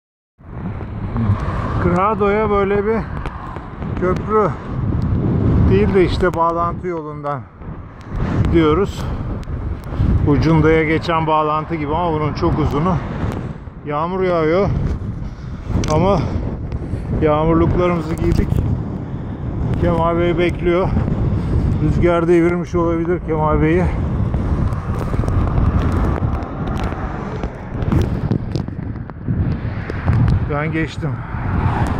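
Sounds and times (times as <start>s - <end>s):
bicycle rumbling on asphalt: 0.4s - 31.9s
cars passing: 0.4s - 31.9s
wind on microphone: 0.4s - 31.9s.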